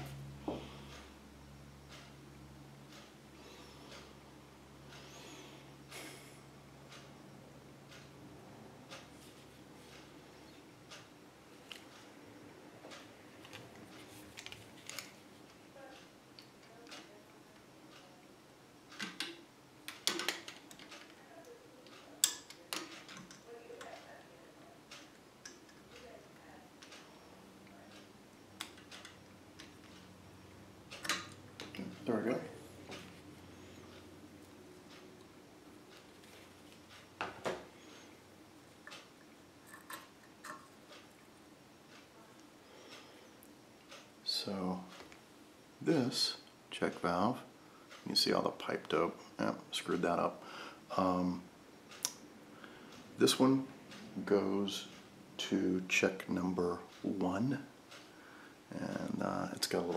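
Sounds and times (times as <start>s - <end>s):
low electrical hum: 0.0s - 59.9s
soft handling sounds: 12.9s - 16.0s, 35.9s - 38.2s.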